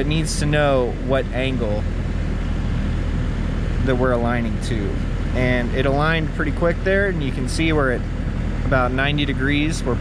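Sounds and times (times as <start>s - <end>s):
excavator engine running: 0.0s - 10.0s.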